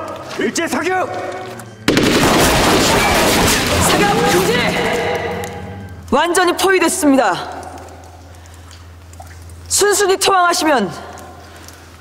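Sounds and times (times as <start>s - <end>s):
massed gunfire volley: 1.9s - 5.0s.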